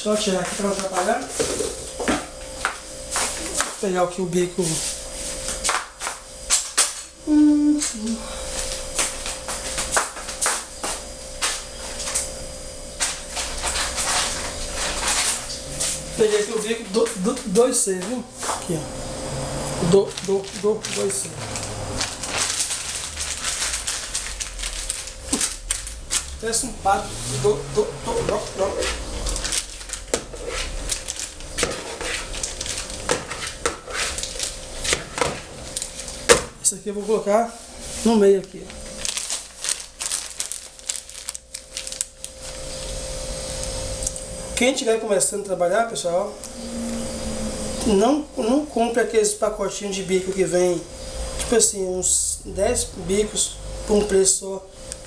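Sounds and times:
faint steady hum: 0.0s - 55.0s
utensils clicking and rustling: 20.0s - 26.6s.

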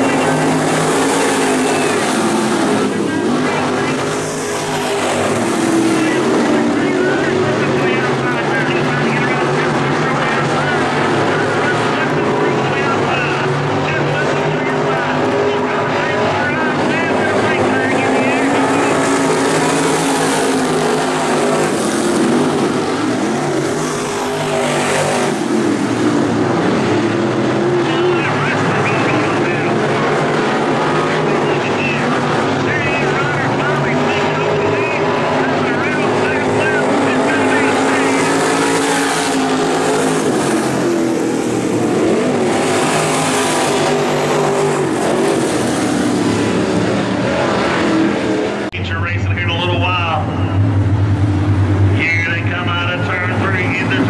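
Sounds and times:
race car engines roaring: 0.0s - 54.0s.

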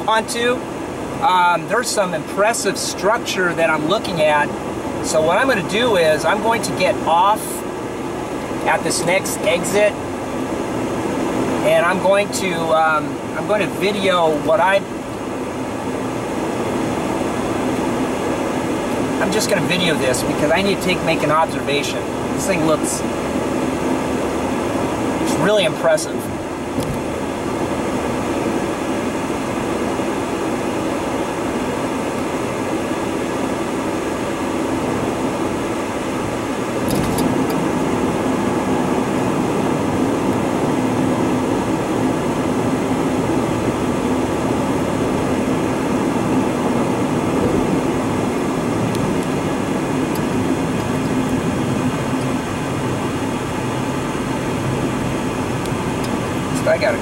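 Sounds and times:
car road noise: 0.0s - 57.0s.

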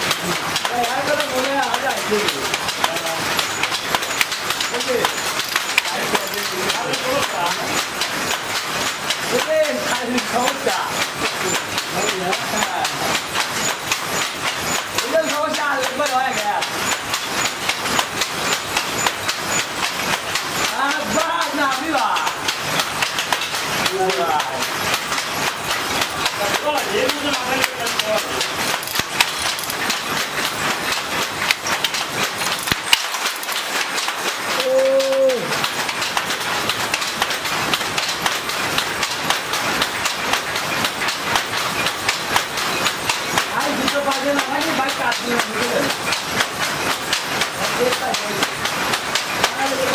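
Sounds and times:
looms clacking: 0.0s - 49.9s
voices: 4.6s - 7.8s, 9.2s - 13.2s, 20.0s - 22.5s, 23.7s - 24.8s, 26.2s - 28.8s, 34.5s - 35.6s, 43.4s - 46.0s.

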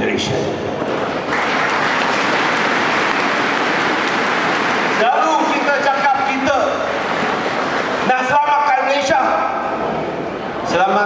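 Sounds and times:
audience applauding: 0.8s - 9.0s.

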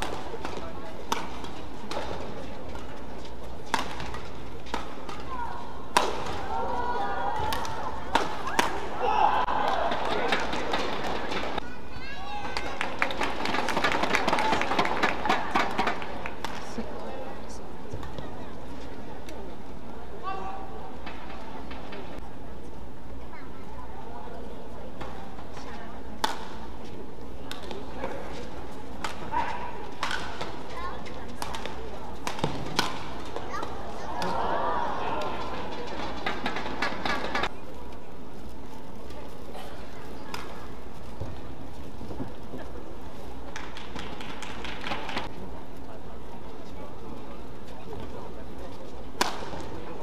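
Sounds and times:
voices: 0.0s - 50.0s
racket strikes on shuttlecock: 3.7s - 5.3s, 5.9s - 6.4s, 7.4s - 8.9s, 29.0s - 30.6s, 31.4s - 34.3s, 49.2s - 49.7s.

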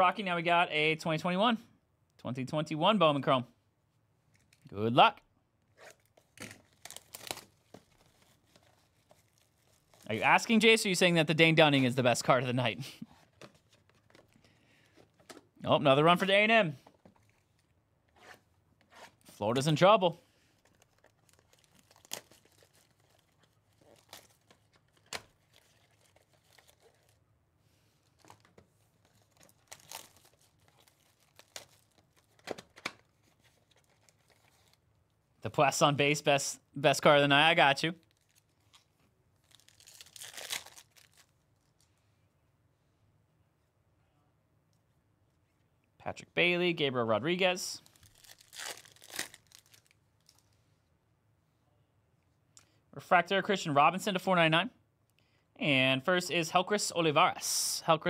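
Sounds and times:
plastic wrap crinkling and ripping: 5.8s - 10.6s, 20.6s - 27.2s, 28.0s - 34.8s, 38.0s - 41.8s, 47.8s - 50.6s.

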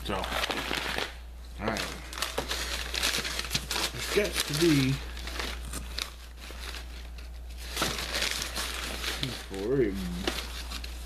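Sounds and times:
paper crinkling and rustling: 0.0s - 11.0s.

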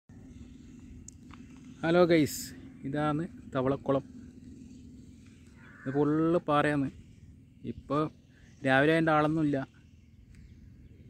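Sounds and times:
outdoor background hum: 0.1s - 11.0s
man speaking: 5.8s - 7.0s, 7.6s - 9.8s.

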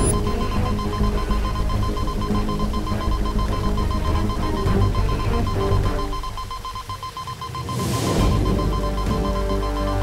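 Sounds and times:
background music: 0.0s - 10.0s
rapid pulsing electronic beep: 0.0s - 10.0s.

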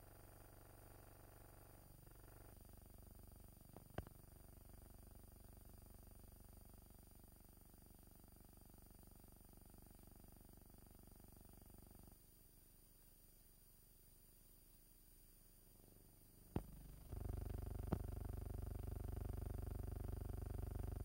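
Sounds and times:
faint low hum: 0.0s - 21.0s.

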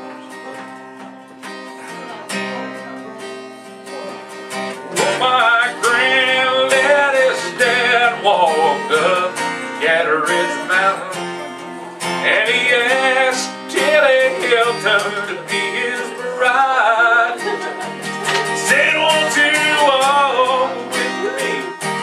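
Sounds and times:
acoustic guitars strummed: 0.0s - 22.0s
person singing: 1.7s - 22.0s.

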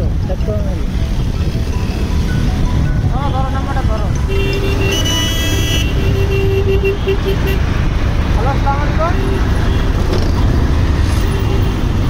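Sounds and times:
vehicle horn: 4.2s - 7.7s.

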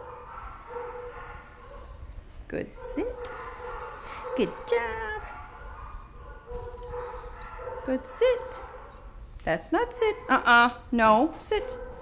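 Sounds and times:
dog whining: 0.0s - 2.1s, 3.0s - 5.0s.

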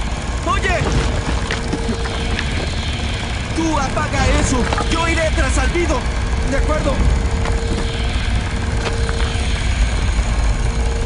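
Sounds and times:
loud low rumble: 0.0s - 11.0s.

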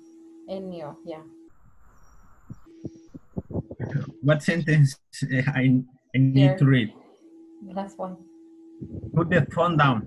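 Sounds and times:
microphone hiss: 0.8s - 7.1s, 8.8s - 10.0s
person speaking hesitantly: 3.5s - 6.9s, 8.8s - 10.0s.

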